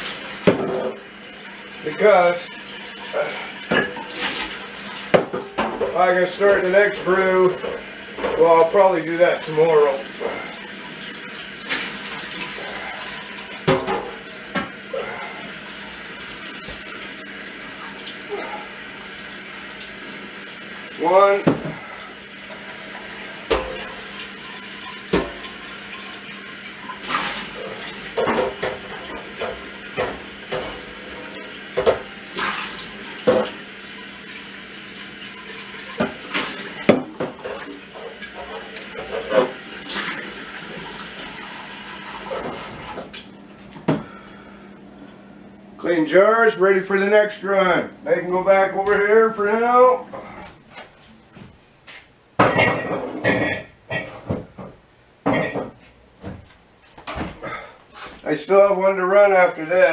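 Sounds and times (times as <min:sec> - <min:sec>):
tap running into sink: 0:25.1 - 0:25.6, 0:31.7 - 0:33.6.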